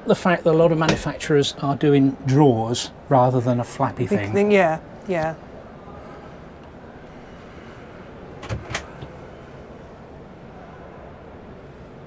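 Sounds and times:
low background noise: 0:00.0 - 0:12.0
locker door latch clicks: 0:08.4 - 0:09.2.

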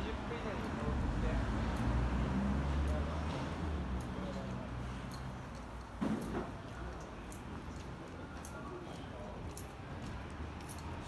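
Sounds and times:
faint voices of passers-by: 0:00.0 - 0:11.0.

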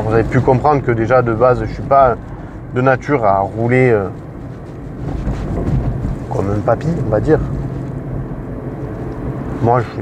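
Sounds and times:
road and tyre rumble: 0:00.0 - 0:10.0.

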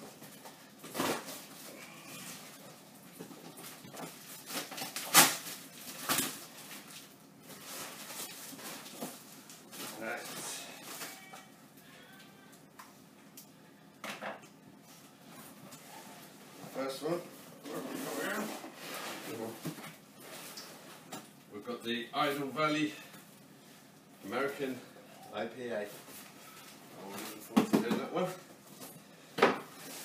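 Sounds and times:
packing tape ripping: 0:04.4 - 0:06.8.

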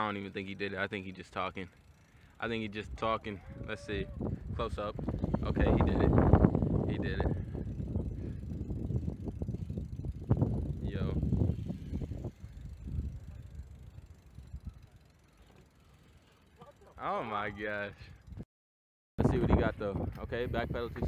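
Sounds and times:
bike tyres rolling on concrete: 0:00.0 - 0:18.3.

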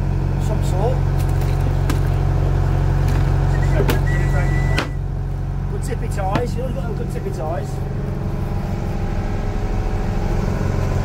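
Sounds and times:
boat engine running: 0:00.0 - 0:11.0.

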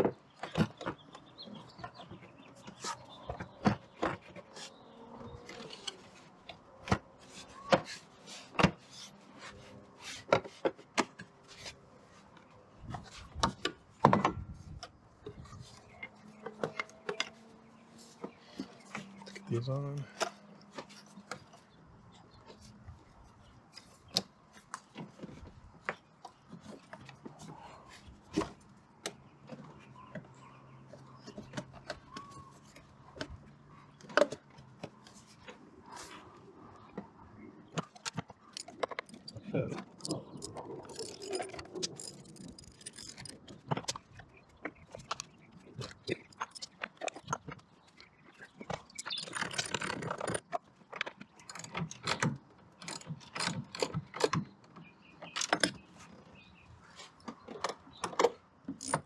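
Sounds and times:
parts rattling: 0:37.7 - 0:47.6, 0:48.4 - 0:54.4, 0:58.7 - 0:59.0
plastic and metal parts clicking: 0:37.7 - 0:55.9, 0:57.2 - 0:59.0
ratchet clicking: 0:40.0 - 0:43.4.

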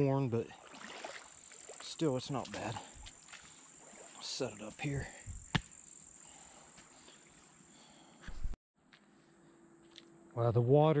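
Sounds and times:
insects buzzing: 0:00.6 - 0:08.2.

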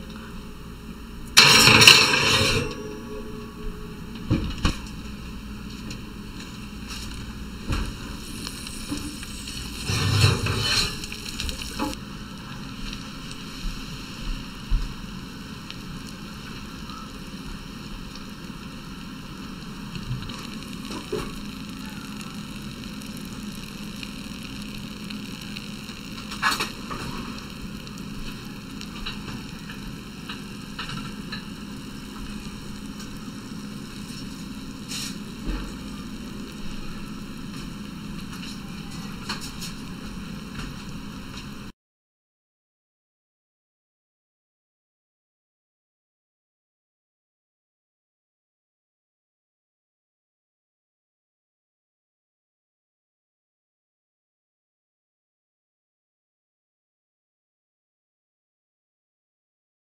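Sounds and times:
steady hum: 0:00.0 - 0:41.7
oil sizzling in baking dish: 0:00.9 - 0:41.7.

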